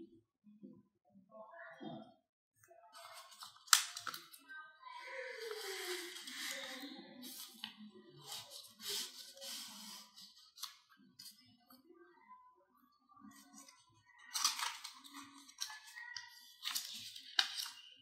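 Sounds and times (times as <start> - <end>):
paper rustling and sliding: 5.4 - 10.7.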